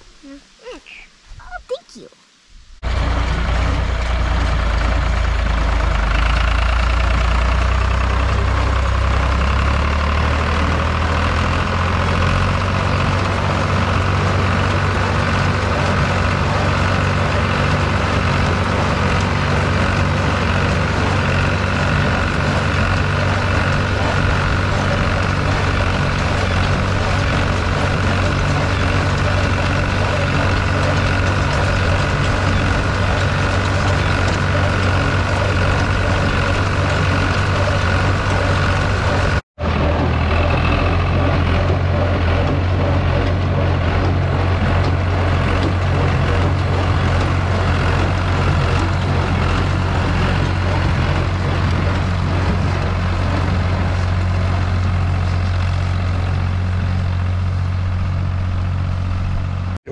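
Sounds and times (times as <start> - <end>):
diesel tractor engine running: 2.8 - 59.9.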